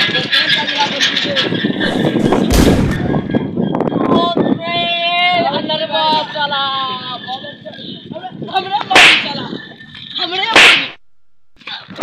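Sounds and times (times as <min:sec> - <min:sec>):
loud whip crack: 0:09.0 - 0:09.3, 0:10.6 - 0:11.0.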